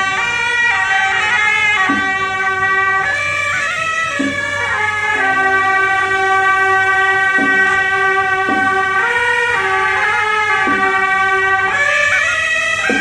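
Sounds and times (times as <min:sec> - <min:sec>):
shawms playing a melody: 0:00.0 - 0:13.0.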